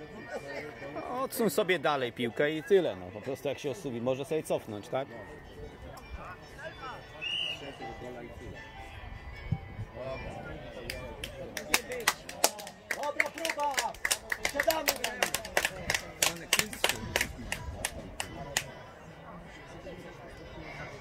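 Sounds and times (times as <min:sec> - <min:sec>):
hand clapping: 0:10.8 - 0:18.7.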